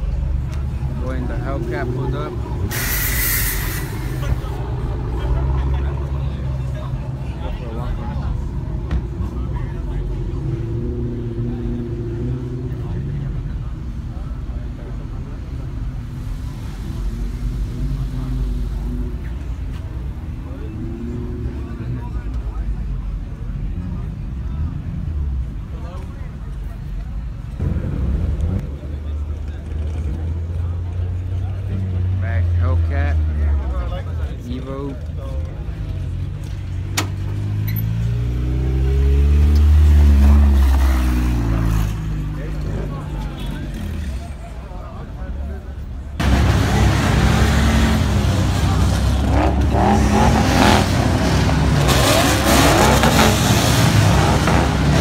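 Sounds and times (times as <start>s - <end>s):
car engines idling: 0.0s - 38.7s, 39.4s - 55.0s
car engine revving: 46.2s - 55.0s.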